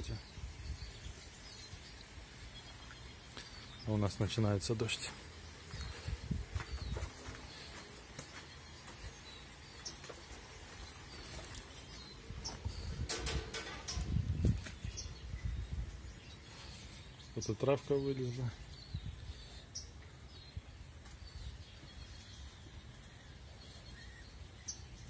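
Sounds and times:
songbirds chirping: 0.0s - 25.0s
rustling and thumps: 12.5s - 14.9s.

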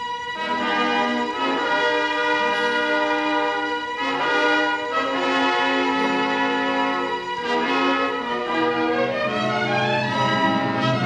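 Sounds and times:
brass sustained chords: 0.0s - 11.0s
orchestra playing: 0.0s - 11.0s.

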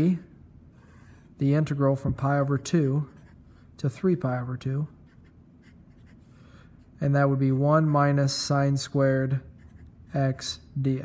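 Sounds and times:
marker writing on paper: 2.9s - 4.0s, 5.0s - 6.3s, 9.5s - 10.1s.

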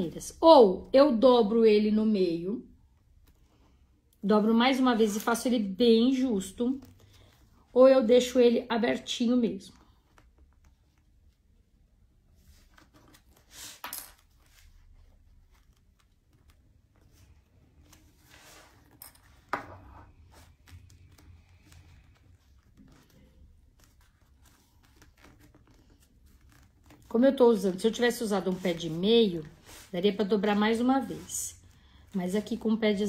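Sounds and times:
fabric rustling: 4.6s - 33.0s.

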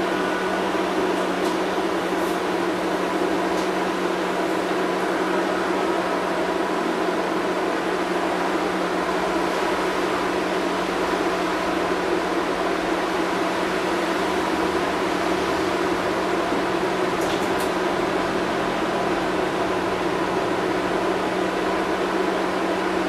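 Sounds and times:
tram interior running noise: 0.0s - 23.0s.

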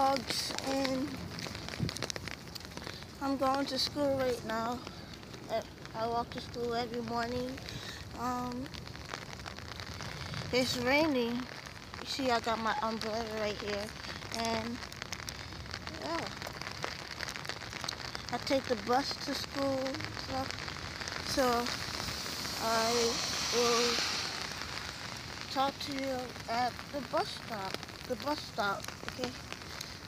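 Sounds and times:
rain on an umbrella: 0.0s - 30.0s.

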